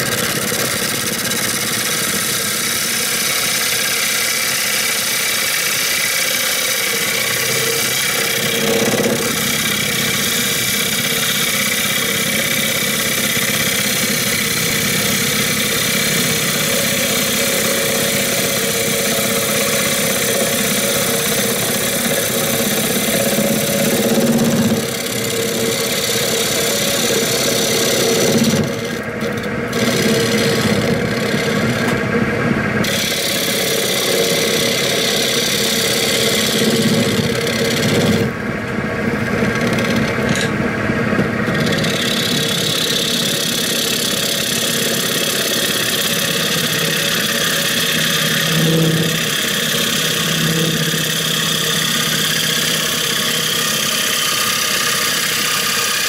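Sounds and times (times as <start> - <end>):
gouge shearing wood: 0.0 - 32.1, 32.8 - 38.4, 39.1 - 56.0
wood lathe running: 0.0 - 56.0.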